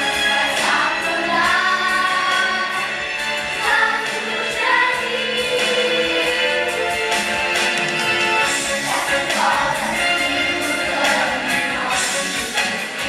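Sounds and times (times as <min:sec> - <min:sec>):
choir singing: 0:00.0 - 0:13.0
dance music: 0:00.0 - 0:13.0.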